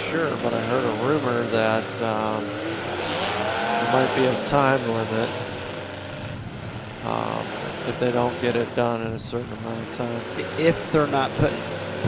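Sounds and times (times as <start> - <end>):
car engines revving: 0.0 - 12.0.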